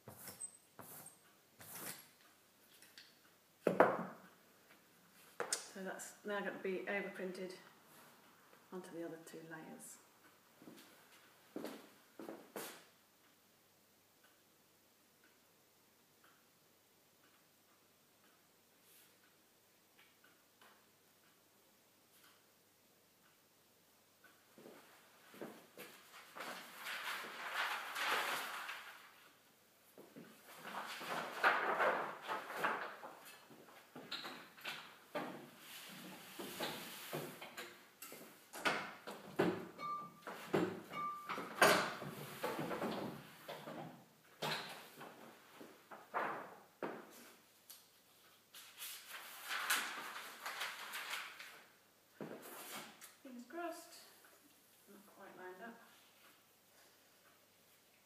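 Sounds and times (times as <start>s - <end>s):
rustling and scraping: 0.0s - 2.1s, 24.6s - 29.4s, 30.0s - 34.1s, 48.0s - 53.2s.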